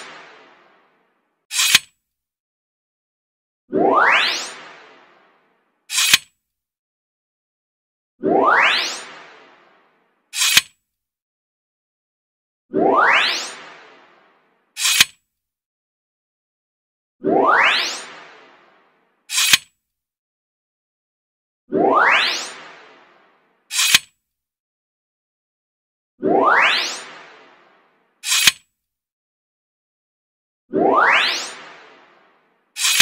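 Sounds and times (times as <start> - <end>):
camera shutter click effect: 1.5 - 1.9, 5.9 - 6.3, 10.4 - 10.7, 14.8 - 15.1, 19.3 - 19.6, 23.7 - 24.1, 28.2 - 28.6, 32.8 - 33.0
short hiss ending in click: 23.7 - 24.0, 32.8 - 33.0.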